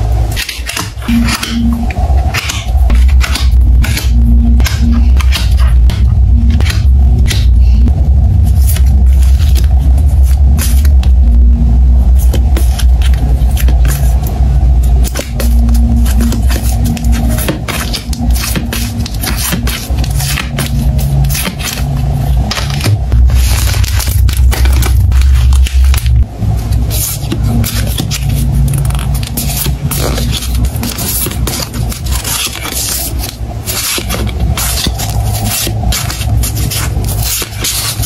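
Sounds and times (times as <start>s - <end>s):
background music with deep bass: 0.0s - 38.0s.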